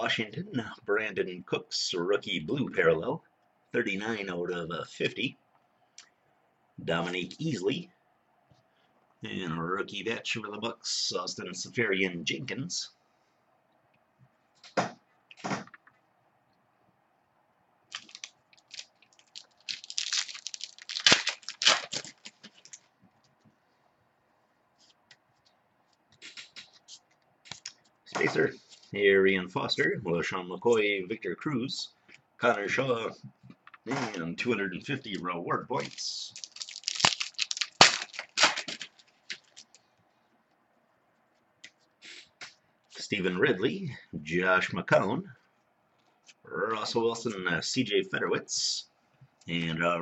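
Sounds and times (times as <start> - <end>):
foil wrapper and cards crinkling: 17.9 - 22.9, 35.7 - 39.9.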